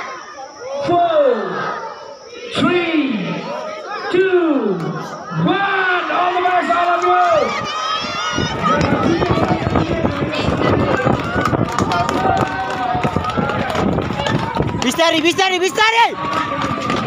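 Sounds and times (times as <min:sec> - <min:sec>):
crowd shouting and cheering: 0:00.0 - 0:17.0
running footsteps: 0:06.1 - 0:17.0.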